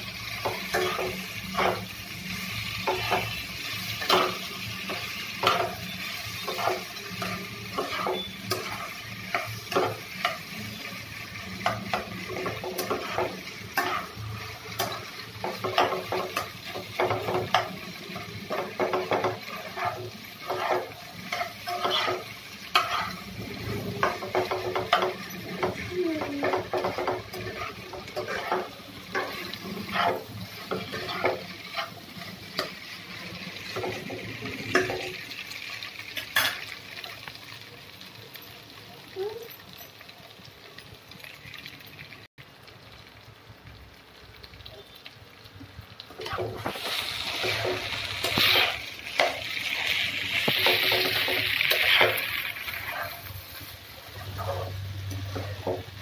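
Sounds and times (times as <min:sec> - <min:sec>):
potatoes sizzling in oil: 0:00.0 - 0:56.0
spatula scraping frying pan: 0:00.3 - 0:35.3, 0:46.1 - 0:55.9.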